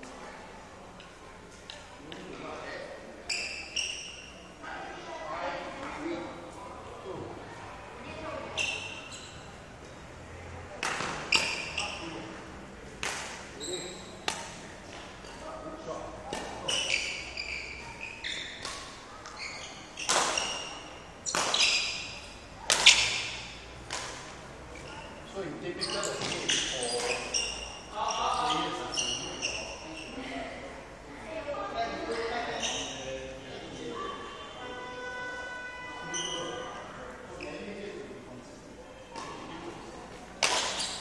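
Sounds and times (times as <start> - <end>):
shoes squeaking on floor: 3.3 - 4.4, 8.2 - 9.6, 11.2 - 12.2, 13.6 - 14.3, 16.6 - 23.5, 24.7 - 30.2, 32.5 - 33.1, 36.1 - 37.7, 40.5 - 41.0
racket hitting shuttlecock: 10.8 - 11.7, 13.0 - 13.4, 14.2 - 15.4, 20.0 - 24.4, 40.4 - 41.0.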